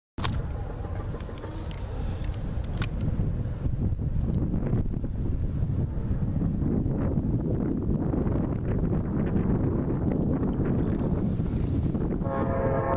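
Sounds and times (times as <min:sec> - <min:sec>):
wind buffeting microphone: 0:00.2 - 0:12.9.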